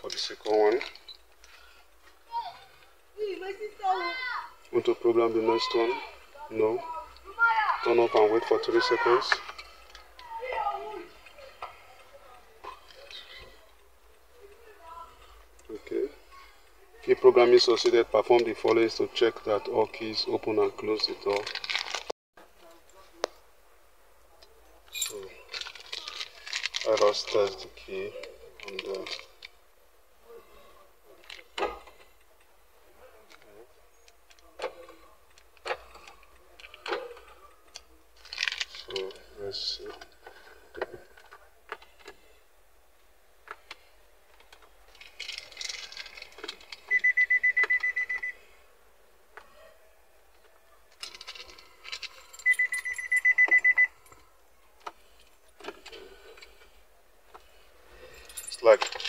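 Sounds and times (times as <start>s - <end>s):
plastic bag crinkling: 21.1s - 22.1s, 25.2s - 27.6s, 38.2s - 39.2s, 44.9s - 46.9s
car warning beeper: 46.9s - 48.4s, 52.4s - 54.0s.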